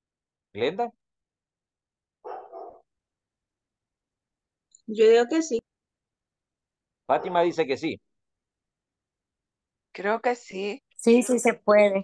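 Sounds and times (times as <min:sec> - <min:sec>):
dog barking: 0:02.2 - 0:02.9, 0:07.1 - 0:07.6.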